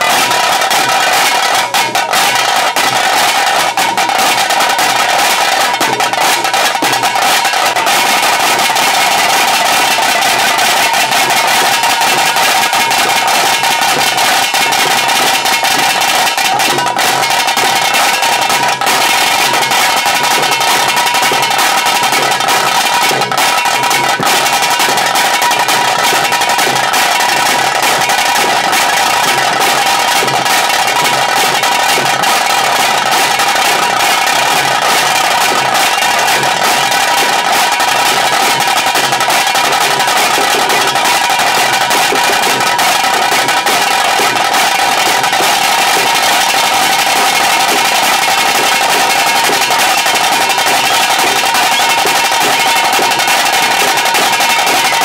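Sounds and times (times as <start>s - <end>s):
fast drum rolls: 0.0s - 55.0s.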